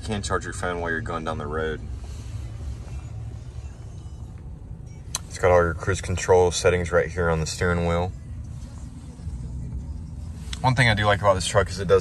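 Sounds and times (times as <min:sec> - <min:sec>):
engine idling inside cab: 0:00.0 - 0:12.0.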